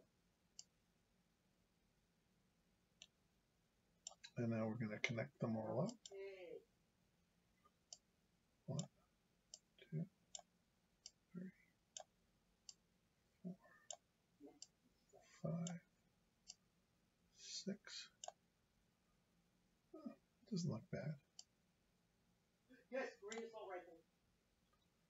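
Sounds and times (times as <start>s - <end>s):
soft low hums or mutters: 4.1s - 6.6s.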